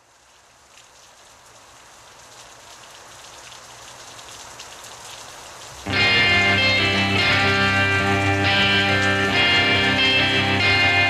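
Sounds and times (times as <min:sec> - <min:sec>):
steady rain: 0:00.0 - 0:11.0
loud guitar-led music: 0:05.8 - 0:11.0.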